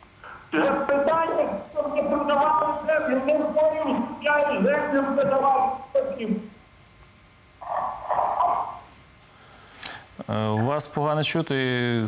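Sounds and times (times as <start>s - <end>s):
garbled telephone line noise: 0.0s - 6.6s, 7.6s - 9.0s
faint telephone line hiss: 0.0s - 12.0s.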